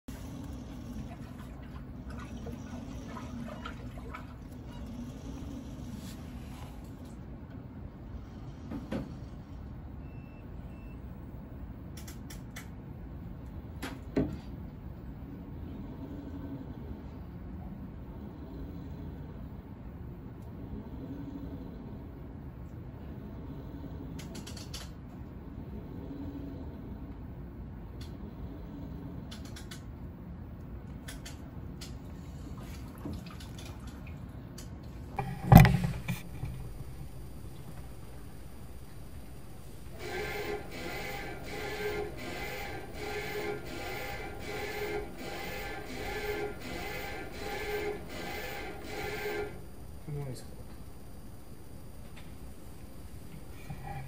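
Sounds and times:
low background rumble: 0.0s - 44.4s.

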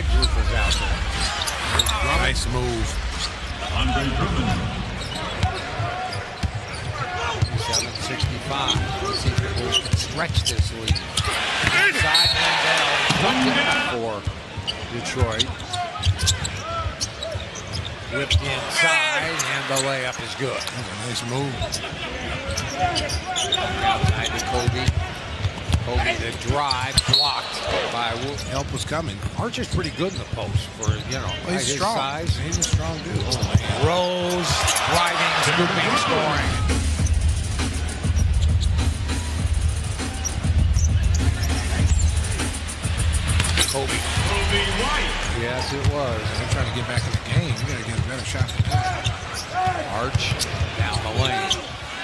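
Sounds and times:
crowd noise: 0.0s - 52.0s
sneaker squeaks: 0.2s - 2.2s, 5.0s - 11.4s, 14.6s - 18.5s, 20.6s - 25.8s, 26.4s - 28.7s, 30.1s - 33.8s, 40.1s - 42.2s, 45.8s - 51.9s
arena music with heavy bass beat: 36.4s - 45.4s
basketball bouncing on court: 45.8s - 49.4s.

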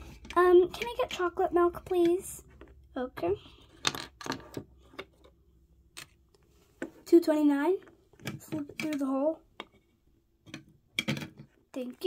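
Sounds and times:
plastic toys clicking on table: 0.0s - 2.2s, 7.8s - 9.8s, 10.4s - 11.6s.

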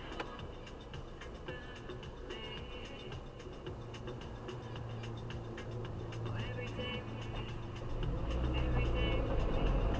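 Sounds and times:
car engine idling: 0.0s - 9.9s.

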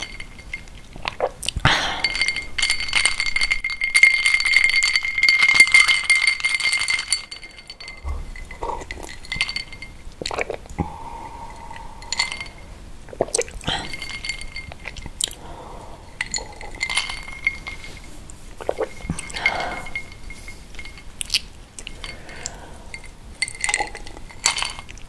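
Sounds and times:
glass ringing: 0.0s - 0.8s, 1.7s - 10.4s, 11.0s - 12.8s, 13.6s - 25.0s
ice cubes clinking in glass: 0.0s - 10.6s, 13.6s - 15.4s, 16.1s - 18.0s, 18.6s - 25.0s.

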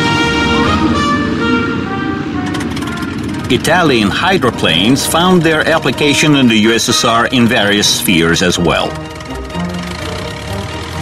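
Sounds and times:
held music notes: 0.0s - 11.0s
low rumble: 0.0s - 11.0s
rapid rattling clicks: 2.4s - 4.1s.

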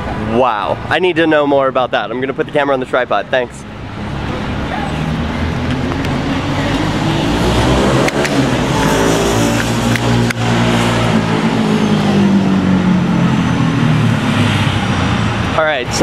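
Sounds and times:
vehicle engine accelerating: 3.8s - 16.0s.

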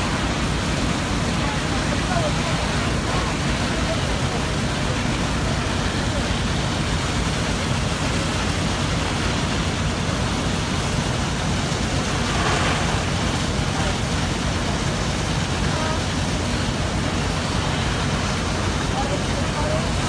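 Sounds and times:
murmur of voices: 0.0s - 8.2s, 18.4s - 20.0s
fire engines running: 0.0s - 20.0s
hose water falling on building: 0.0s - 20.0s.

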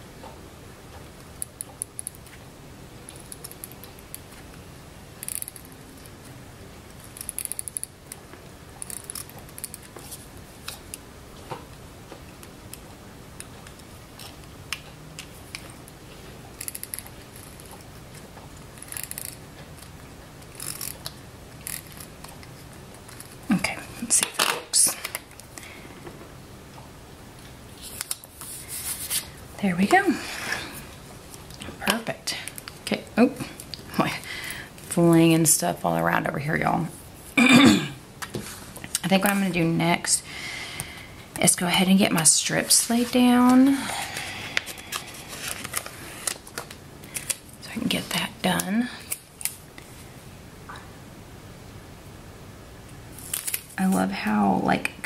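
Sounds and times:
rustling and scraping: 27.7s - 29.4s, 38.2s - 39.6s, 42.6s - 47.4s
paper handling: 42.8s - 47.4s, 53.2s - 53.8s.

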